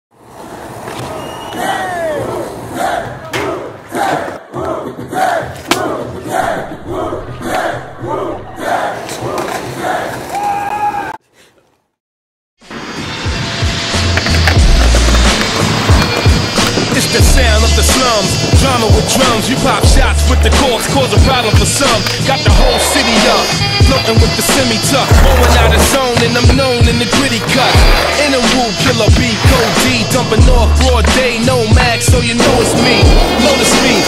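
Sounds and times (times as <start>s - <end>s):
voices shouting rhythmically: 1.4s - 11.0s
hip-hop beat with heavy bass: 13.6s - 34.0s.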